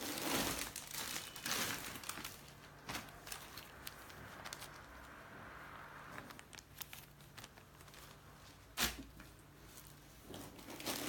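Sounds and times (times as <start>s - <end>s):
plastic wrap crinkling: 0.0s - 5.2s, 6.0s - 11.0s.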